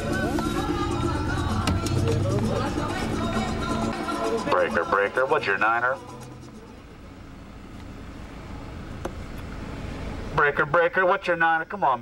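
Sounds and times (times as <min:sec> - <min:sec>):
road and engine rumble in van: 0:00.0 - 0:12.0.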